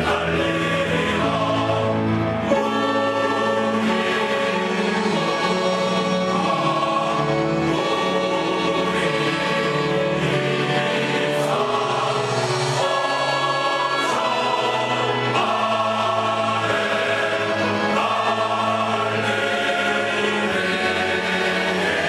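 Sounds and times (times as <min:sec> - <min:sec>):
choir singing sustained chords: 0:00.0 - 0:22.0.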